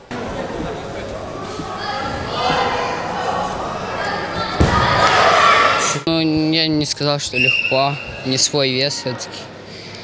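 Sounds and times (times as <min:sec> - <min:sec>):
hubbub of voices: 0:00.0 - 0:06.1, 0:07.3 - 0:10.0.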